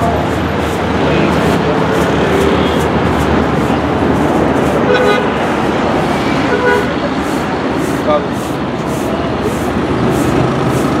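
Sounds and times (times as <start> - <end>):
city street traffic: 0.0 - 11.0
vehicle horn toots: 4.8 - 5.4, 6.5 - 7.0.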